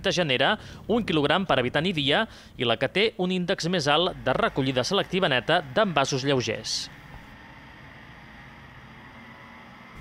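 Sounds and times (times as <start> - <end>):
truck engine running: 3.8 - 10.0.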